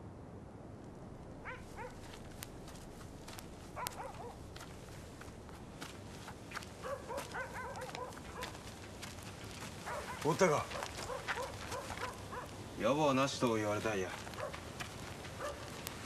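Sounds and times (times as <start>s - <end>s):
dog barking and yelping: 1.4s - 2.0s, 3.8s - 4.4s, 6.8s - 8.6s, 9.8s - 12.6s, 14.3s - 14.6s, 15.4s - 15.8s.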